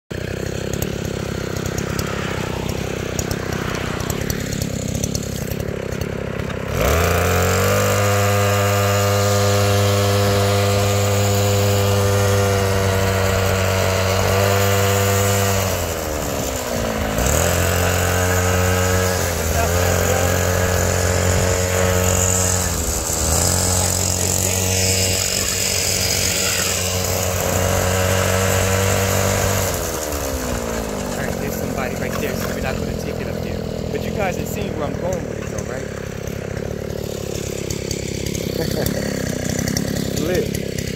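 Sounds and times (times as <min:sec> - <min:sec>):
small engine running: 0:00.1 - 0:40.9.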